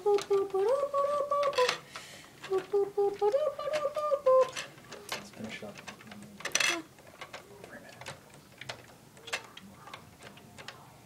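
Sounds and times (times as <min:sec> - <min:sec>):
plastic bricks clicking and knocking: 0:00.0 - 0:10.9.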